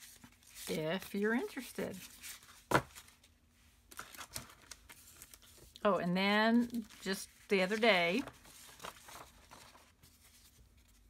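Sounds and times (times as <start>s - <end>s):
paper rustling: 0.0s - 3.3s, 3.9s - 5.8s, 6.5s - 11.0s.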